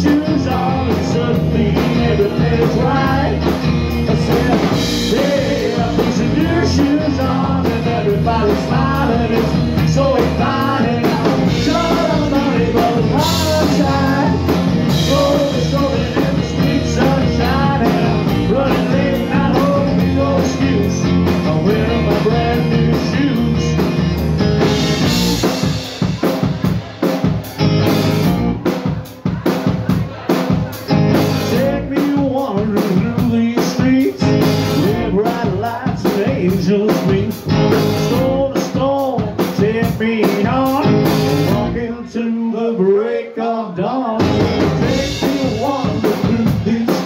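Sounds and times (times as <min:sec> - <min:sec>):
live rock band playing: 0:00.0 - 0:42.1, 0:44.1 - 0:47.0.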